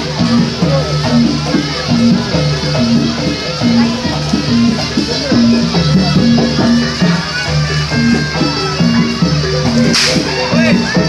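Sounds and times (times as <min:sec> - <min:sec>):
loud ensemble music: 0:00.0 - 0:11.0
whip crack: 0:09.8 - 0:10.3.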